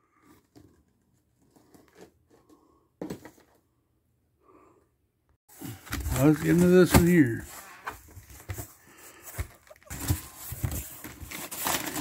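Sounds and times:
paper rustling in a box: 5.8 - 12.0.

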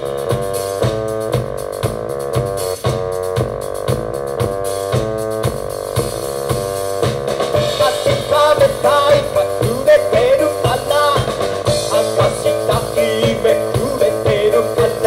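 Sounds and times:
drum kit beat: 0.0 - 15.0
synthesizer chord stabs: 0.0 - 15.0.

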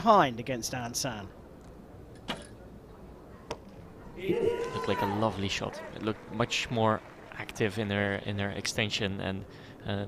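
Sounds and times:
quiet outdoor ambience: 0.0 - 10.0.

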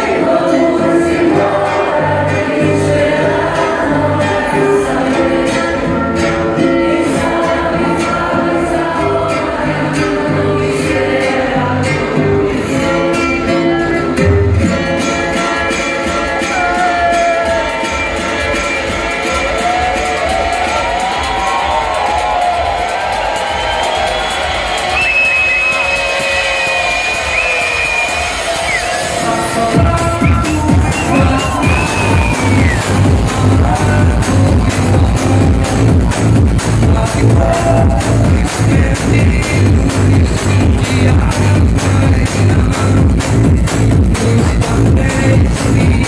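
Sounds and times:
electronic dance music: 11.0 - 46.0.

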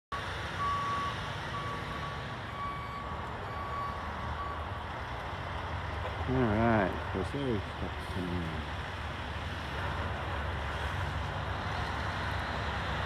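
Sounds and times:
truck backup alarm beeping: 0.1 - 4.8.

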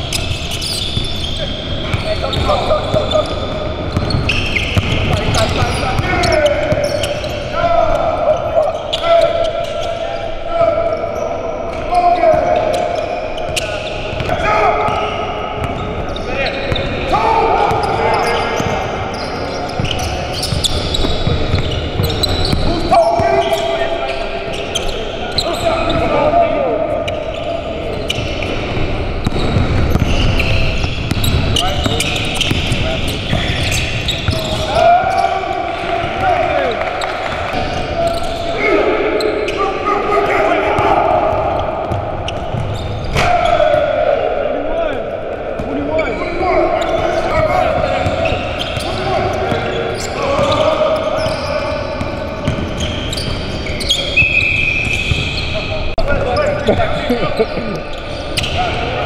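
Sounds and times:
players calling and chatting: 0.0 - 59.0
basketballs bouncing on hardwood: 1.9 - 6.9, 19.8 - 23.2, 29.2 - 34.7.

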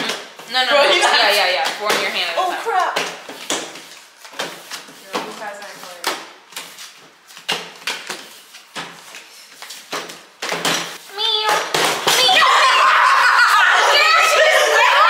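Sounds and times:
playing cards slapping on table: 2.8 - 12.3.

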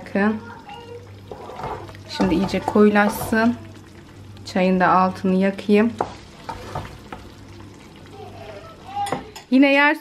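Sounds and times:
cooking mixture hissing: 0.0 - 9.5
wooden spoon knocking on pot: 1.3 - 3.6, 5.8 - 7.4, 9.0 - 9.5.

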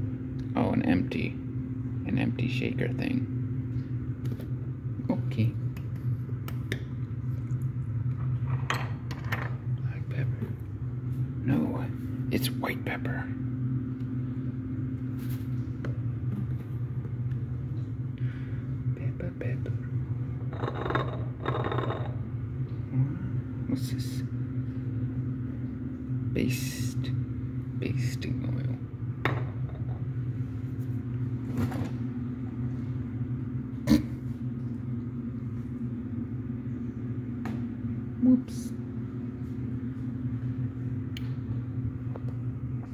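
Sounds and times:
steady low hum: 0.0 - 42.9.

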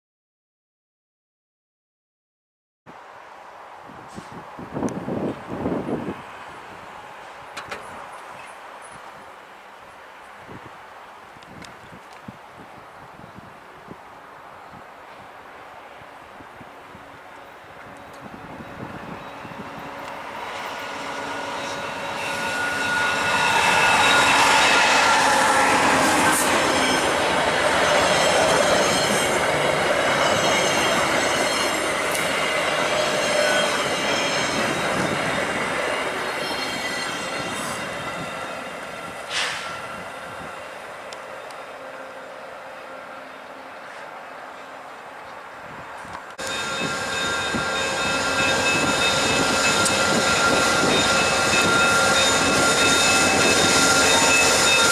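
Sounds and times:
passenger train passing: 3.0 - 54.9
wheels and brakes squealing: 18.0 - 42.4, 46.4 - 54.9.

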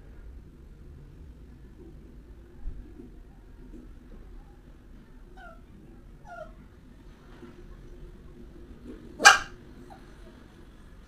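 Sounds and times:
dog whining: 5.4 - 6.6
dog barking: 9.2 - 10.0.

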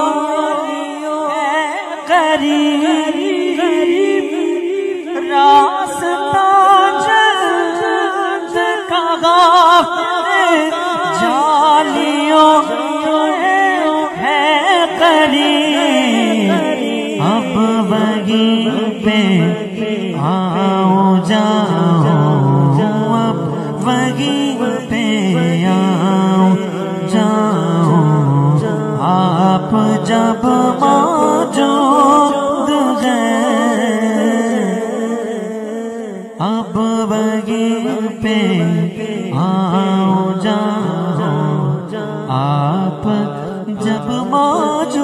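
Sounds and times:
man singing into a microphone: 0.0 - 45.0.

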